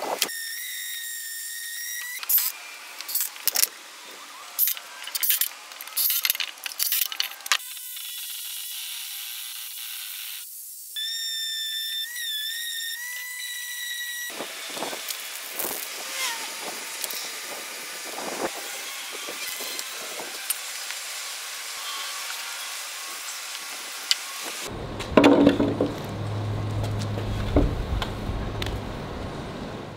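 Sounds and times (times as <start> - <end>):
spray paint cans hissing: 2.2 - 3.7, 4.6 - 8.3.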